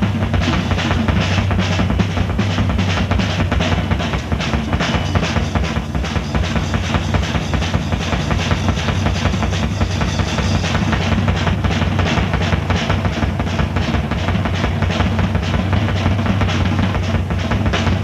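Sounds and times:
drum fills and rolls: 0.0s - 18.0s
rock band playing: 0.0s - 18.0s
steady bass line: 0.0s - 18.0s.

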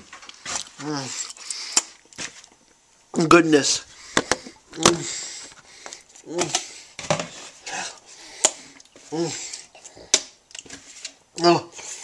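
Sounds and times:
wet eating mouth sounds: 0.2s - 2.7s.

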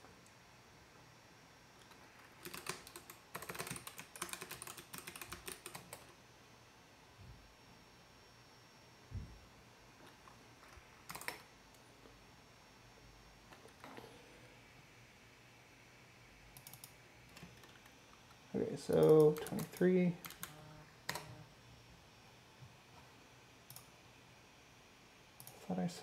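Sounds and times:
computer keyboard keystrokes: 1.8s - 6.1s, 10.6s - 11.5s, 16.6s - 17.9s, 19.0s - 21.4s.

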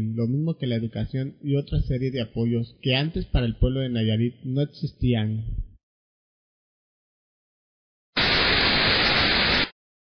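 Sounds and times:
loud static hiss: 8.2s - 9.8s.

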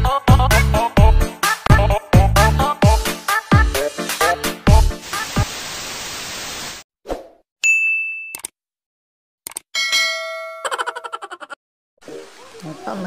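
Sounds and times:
tv static hiss: 5.0s - 6.8s
high ding: 7.6s - 8.4s, 9.8s - 10.7s.

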